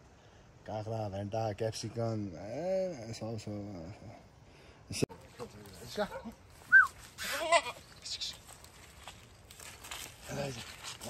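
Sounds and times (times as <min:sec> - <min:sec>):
goats bleating: 0:07.2 - 0:07.8.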